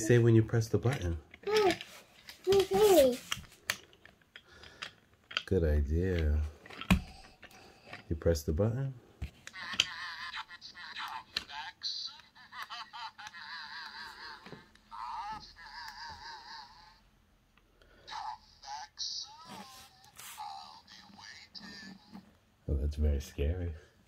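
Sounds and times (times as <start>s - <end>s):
toy speaking through tinny speaker: 0.9s - 1.8s, 2.5s - 3.2s, 9.5s - 17.0s, 18.1s - 22.2s.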